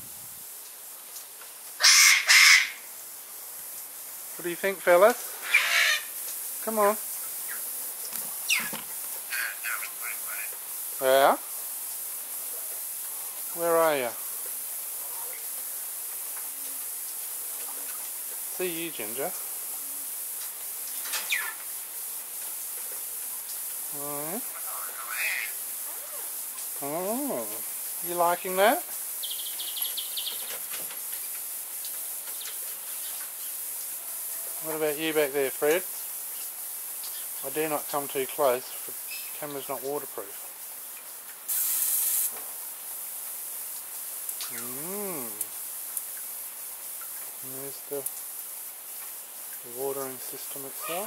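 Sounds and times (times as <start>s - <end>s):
misting nozzles hissing: 0.6s - 51.0s
bird squeaking: 5.4s - 6.1s, 8.4s - 8.8s
bird chirping: 8.4s - 8.8s, 29.2s - 30.5s.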